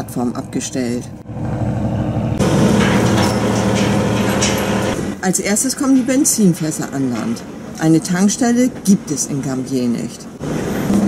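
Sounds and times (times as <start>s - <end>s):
engine humming: 0.0s - 7.8s.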